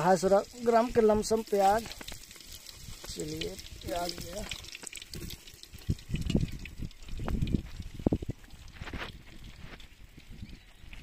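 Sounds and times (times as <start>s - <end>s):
onion sizzling in hot oil: 0.0s - 9.7s.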